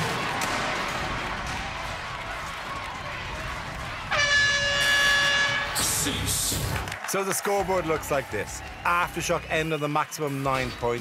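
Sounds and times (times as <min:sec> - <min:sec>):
arena noise: 0:00.0 - 0:11.0
flat-pitched horn blast: 0:04.1 - 0:06.2.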